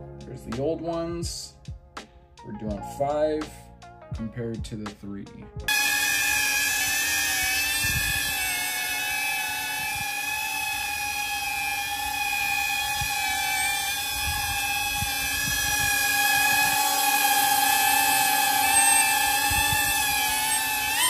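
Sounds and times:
drone propeller whine: 0:05.7 - 0:21.0.

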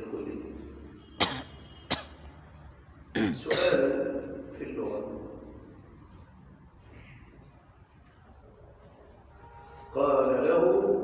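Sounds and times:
man coughing: 0:01.2 - 0:02.3, 0:03.1 - 0:04.0.

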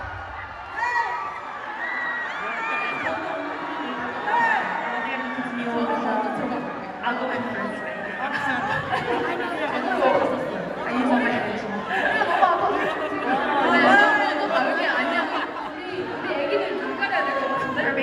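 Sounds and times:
crowd chatter: 0:00.0 - 0:18.0
women talking through microphones: 0:02.9 - 0:18.0.

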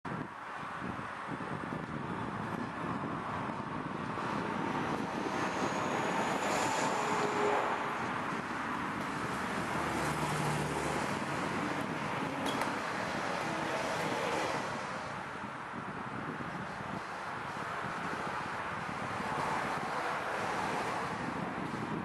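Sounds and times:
distant freight train: 0:04.3 - 0:14.7.

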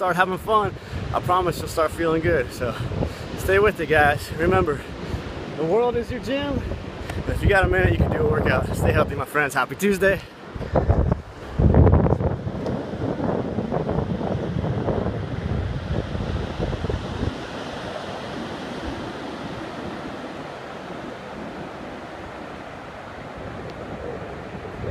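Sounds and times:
surf washing onto beach: 0:00.0 - 0:24.9
wind buffeting microphone: 0:00.3 - 0:09.3, 0:10.0 - 0:24.9.

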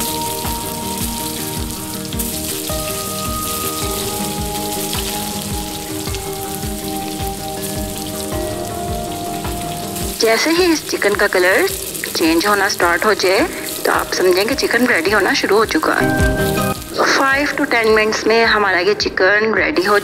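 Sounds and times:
chicken sizzling in hot oil: 0:00.0 - 0:18.9
soft background music: 0:00.0 - 0:20.0.

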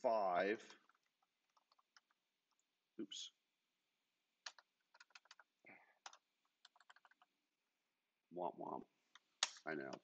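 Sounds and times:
computer keyboard typing: 0:00.7 - 0:02.2, 0:04.5 - 0:07.3.

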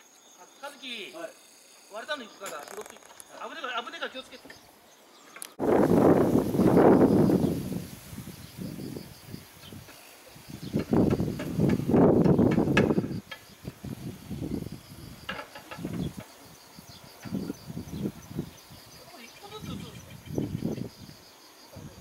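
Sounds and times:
insect buzzing: 0:00.0 - 0:22.0.

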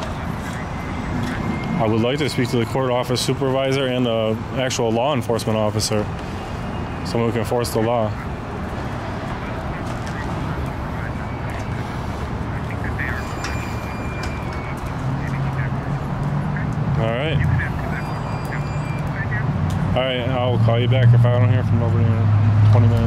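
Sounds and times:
passing traffic: 0:00.0 - 0:23.0.

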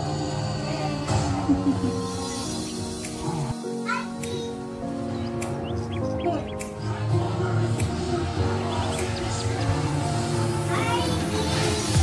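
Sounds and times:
background music held notes: 0:00.0 - 0:12.0.

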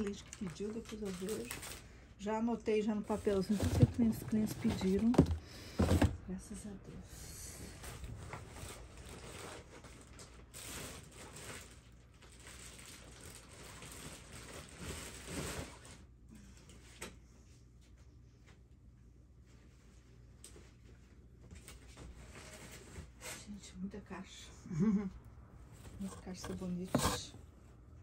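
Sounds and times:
cardboard boxes rustling: 0:03.1 - 0:06.2, 0:25.6 - 0:27.4.

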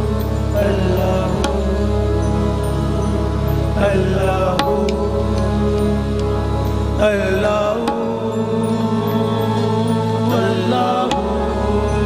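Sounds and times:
harmonium drone: 0:00.0 - 0:12.0
singers holding long notes: 0:00.0 - 0:12.0.

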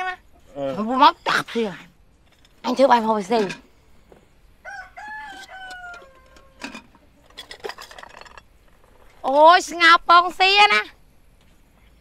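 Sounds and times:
rooster crowing: 0:04.6 - 0:06.9.

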